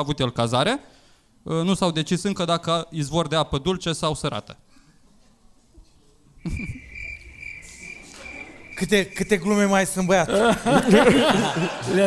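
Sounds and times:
crickets chirping: 6.4 - 11.4.

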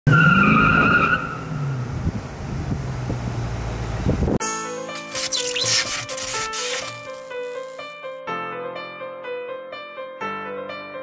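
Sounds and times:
tyres squealing: 5.0 - 8.1.

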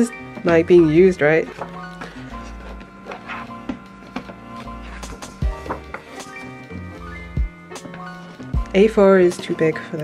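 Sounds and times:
music of sustained notes: 0.0 - 10.0
sketchbook pages rustling: 0.4 - 6.2.

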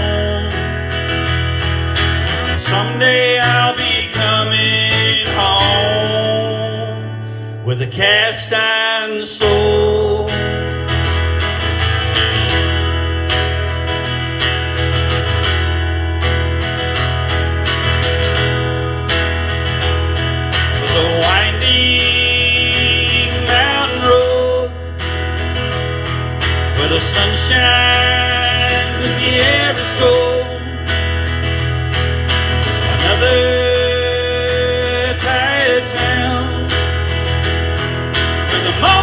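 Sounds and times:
sustained low bass: 0.0 - 8.7, 9.4 - 39.0
acoustic guitar strumming: 0.0 - 39.0.

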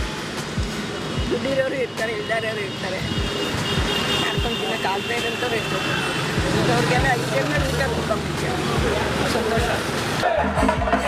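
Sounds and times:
auto-rickshaw engine passing: 0.0 - 10.2
street traffic: 0.0 - 11.0.

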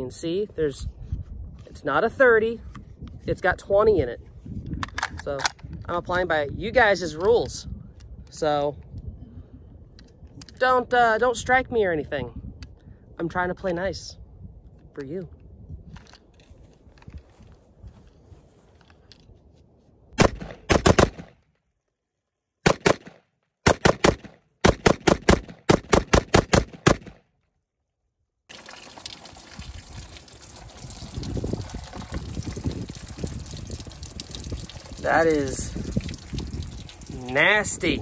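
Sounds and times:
rapid gunfire: 20.2 - 21.3, 22.6 - 27.2
water splashing and trickling: 28.5 - 38.0.

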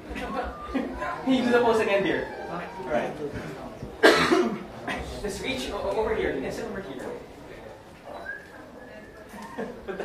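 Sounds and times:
loud cough: 4.0 - 5.1.

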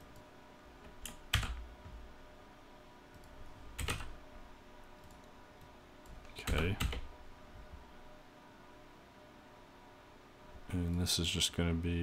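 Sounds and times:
computer keyboard key presses: 3.2 - 4.1.

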